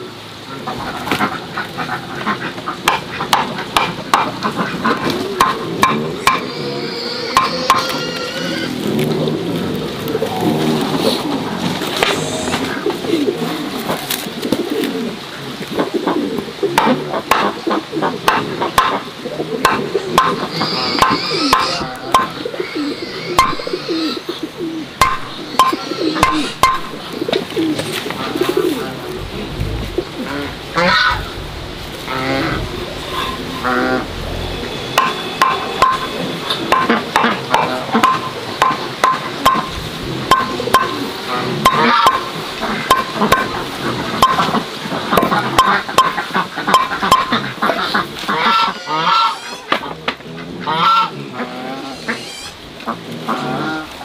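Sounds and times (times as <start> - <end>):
birds cooing and calling: 0.0 - 54.0.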